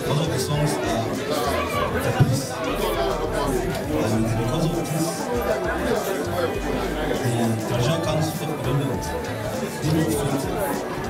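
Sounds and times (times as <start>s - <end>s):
background music: 0.0s - 11.0s
chatter: 0.0s - 11.0s
man speaking into microphone: 0.0s - 11.0s.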